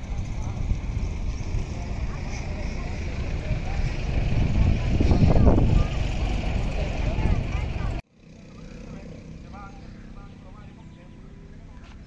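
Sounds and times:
loud low rumble: 0.0s - 8.0s
distant voices talking: 0.0s - 12.0s.

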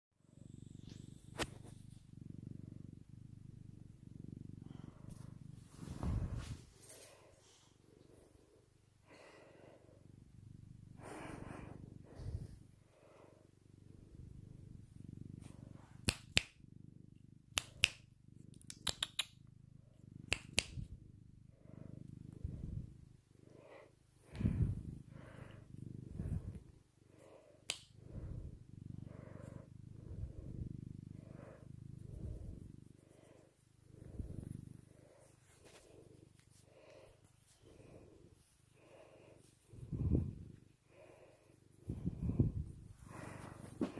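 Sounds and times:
cat purring: 0.2s - 43.9s.

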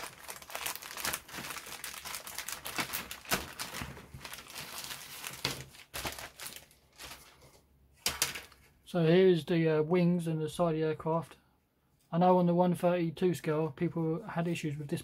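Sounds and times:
plastic bag crinkling: 0.0s - 7.5s.

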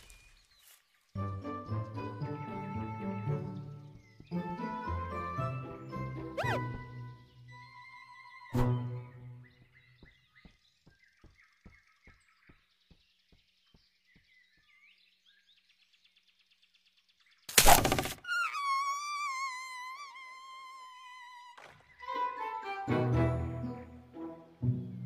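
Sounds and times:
faint bird chirps: 5.9s - 22.2s.

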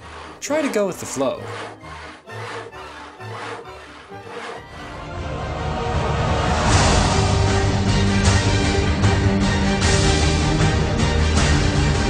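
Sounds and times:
hand saw cutting: 0.0s - 5.0s
background music: 0.0s - 12.0s.

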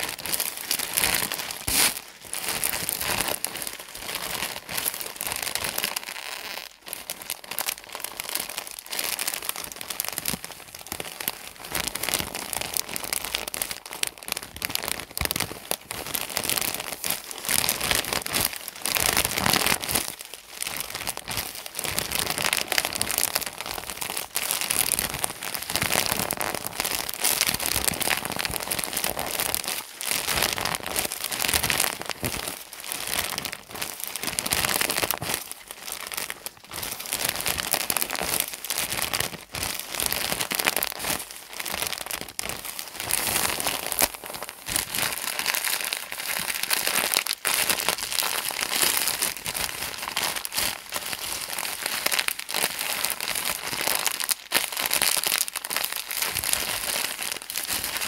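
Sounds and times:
plastic packaging crinkling: 0.0s - 58.0s.

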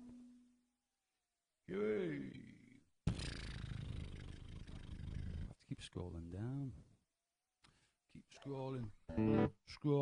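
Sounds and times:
beatboxing buzzing throat sound: 3.1s - 5.5s.

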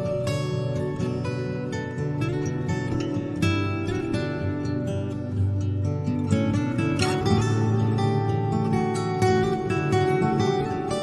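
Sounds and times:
plucked notes over held tones: 0.0s - 11.0s.

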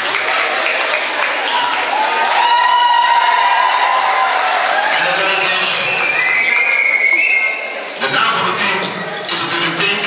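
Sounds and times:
people talking: 8.0s - 10.0s.

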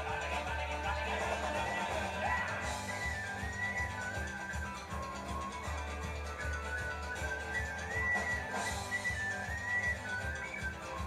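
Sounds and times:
bass guitar: 0.0s - 11.0s
strummed acoustic guitar: 0.0s - 11.0s
tin whistle playing: 1.3s - 11.0s.

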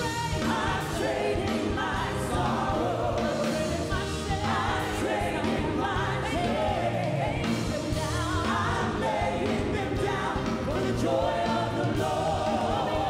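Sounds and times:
band playing gospel music: 0.0s - 13.0s
woman singing into a microphone: 3.1s - 10.8s.

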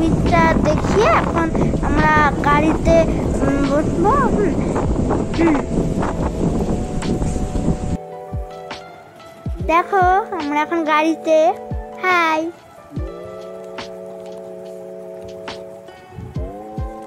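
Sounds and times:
wind buffeting microphone: 0.0s - 8.7s, 9.4s - 17.0s
steady musical tones: 0.0s - 17.0s
people calling out: 9.6s - 17.0s.

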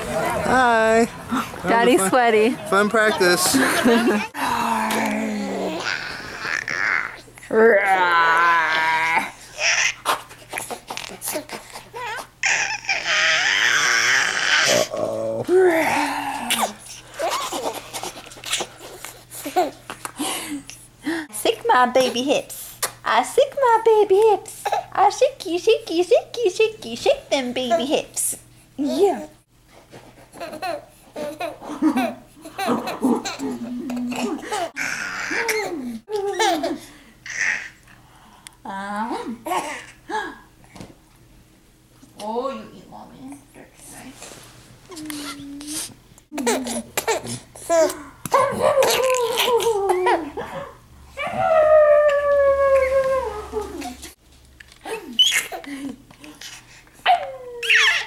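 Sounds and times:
baby laughing: 9.6s - 14.9s, 17.2s - 19.8s, 30.4s - 37.8s, 57.6s - 58.0s
howl-like animal call: 51.2s - 53.8s.

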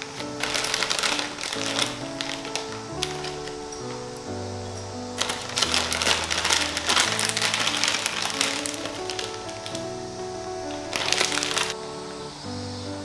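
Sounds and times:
dry radish strips crackling: 0.0s - 11.8s
plastic bag crinkling: 0.0s - 11.8s
background music: 0.0s - 13.0s.

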